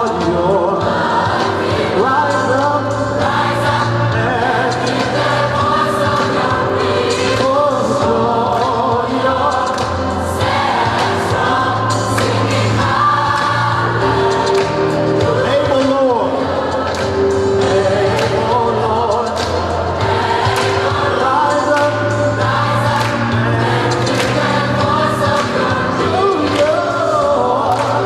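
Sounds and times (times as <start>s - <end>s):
gospel choir singing: 0.0s - 28.0s.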